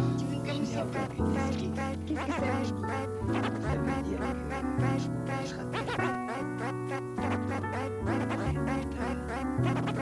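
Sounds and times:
vinyl record scratching: 0:09.4 - 0:10.0.

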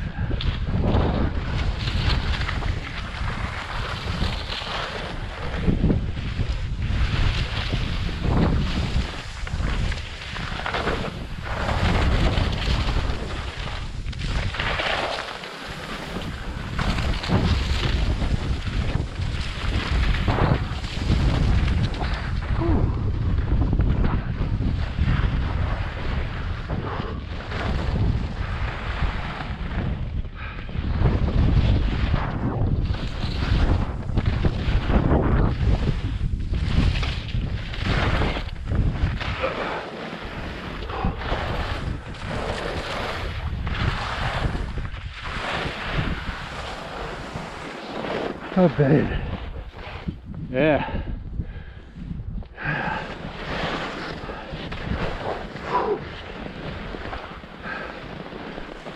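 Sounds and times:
wind rushing over microphone: 0:00.0 - 0:58.9
skis scraping on snow: 0:00.4 - 0:22.6, 0:23.3 - 0:50.3, 0:52.6 - 0:58.9.

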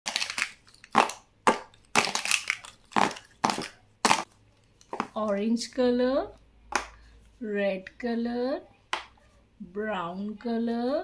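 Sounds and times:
plastic markers clattering: 0:00.1 - 0:05.2.

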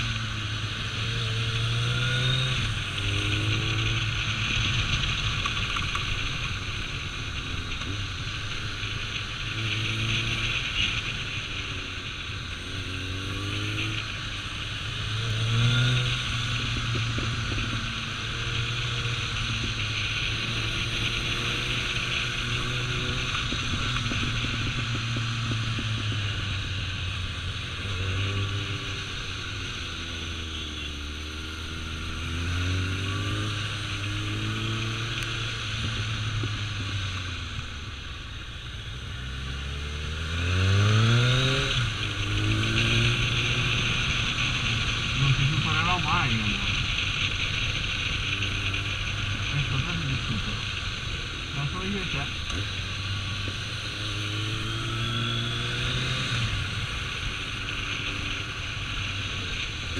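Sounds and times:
motorcycle engine revving: 0:00.0 - 0:59.9
wind and road noise: 0:00.0 - 0:59.9.

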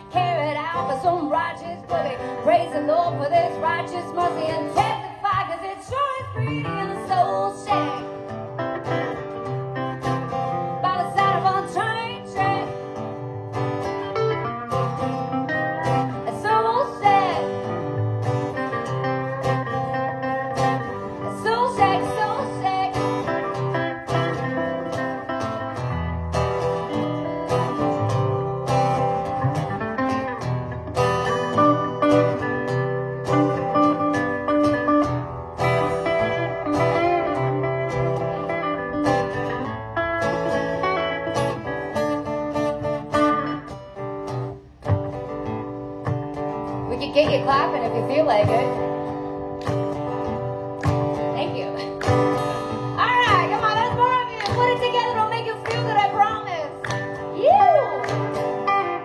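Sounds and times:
acoustic guitars playing: 0:00.0 - 0:59.0.

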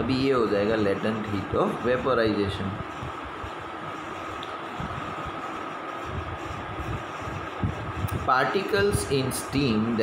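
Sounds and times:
faint high hum: 0:00.0 - 0:10.0.

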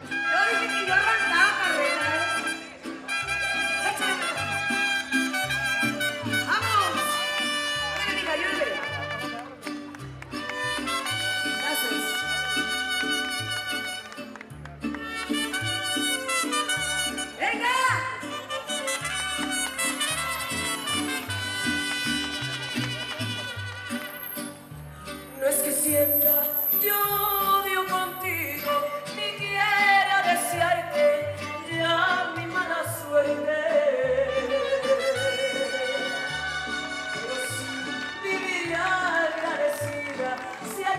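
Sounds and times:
trumpets and violins sustained notes: 0:00.0 - 0:09.6, 0:10.6 - 0:14.2, 0:18.3 - 0:24.4, 0:34.2 - 0:38.3
mariachi band playing: 0:00.0 - 0:40.9.

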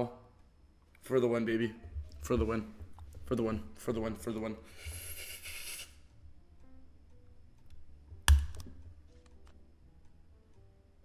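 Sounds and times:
faint game music: 0:00.0 - 0:11.0
hissing noise: 0:04.7 - 0:06.0.

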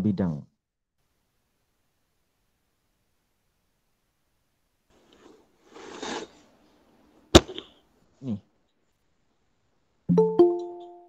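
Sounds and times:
sharp knock: 0:07.4 - 0:07.7.

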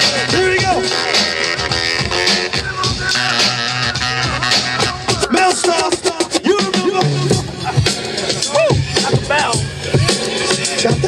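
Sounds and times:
hip hop beat: 0:00.0 - 0:11.0
record scratching: 0:00.6 - 0:06.4.

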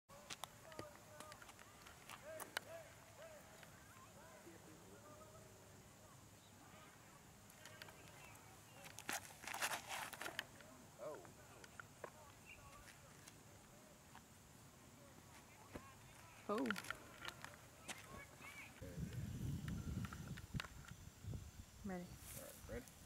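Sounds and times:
feet scuffing and clicking on pad: 0:08.8 - 0:10.4.

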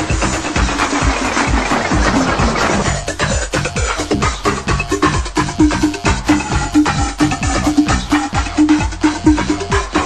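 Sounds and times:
noisy synth layers: 0:00.0 - 0:03.5.

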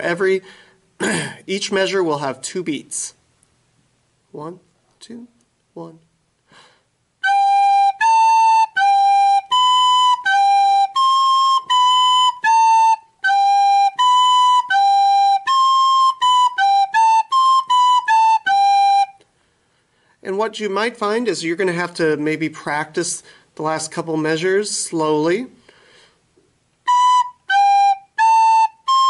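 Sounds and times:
recorder playing slow notes: 0:07.2 - 0:19.3, 0:26.8 - 0:29.0.

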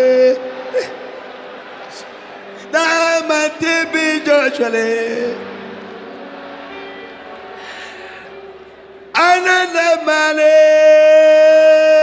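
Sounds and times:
man breathing into microphone: 0:07.6 - 0:08.4.

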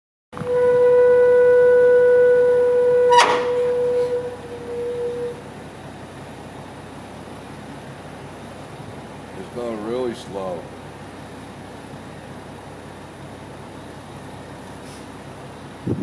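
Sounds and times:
hydraulic pump motor whining: 0:00.4 - 0:05.5.

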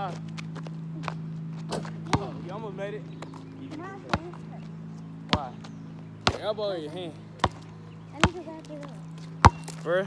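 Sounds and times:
steady low hum: 0:00.0 - 0:10.0
basketball knocking hoop: 0:09.4 - 0:09.8.

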